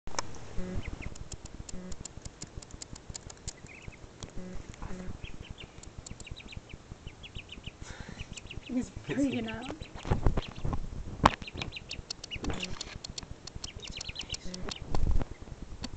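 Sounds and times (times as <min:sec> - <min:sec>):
duckling peeping: 0:00.6 - 0:15.9.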